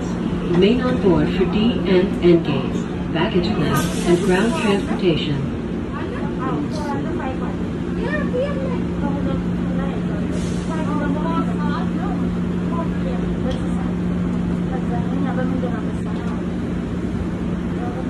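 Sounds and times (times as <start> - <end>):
low hum in train car: 0.0 - 18.0
passengers talking: 0.0 - 18.0.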